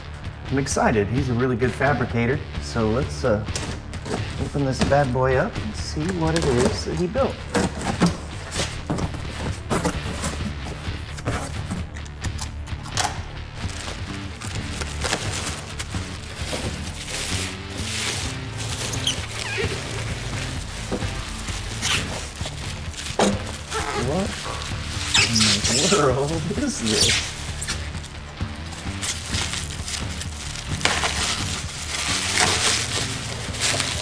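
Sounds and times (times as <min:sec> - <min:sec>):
background music: 0:00.0 - 0:34.0
cardboard box rustling: 0:03.5 - 0:05.2, 0:06.1 - 0:12.2, 0:13.7 - 0:34.0
packing peanuts and bubble wrap rustling: 0:13.5 - 0:34.0.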